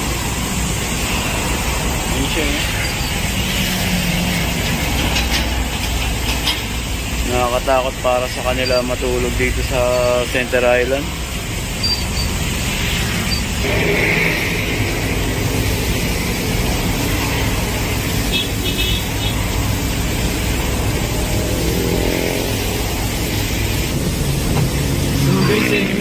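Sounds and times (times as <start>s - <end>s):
engine and road noise in cabin: 0.0s - 26.0s
surrounding traffic: 0.0s - 26.0s.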